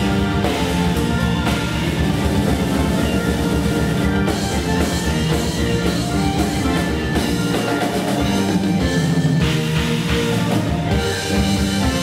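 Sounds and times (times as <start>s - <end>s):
pulsing bass and drums: 0.0s - 12.0s
rock band playing live: 0.0s - 12.0s
sustained keyboard chords: 0.0s - 12.0s.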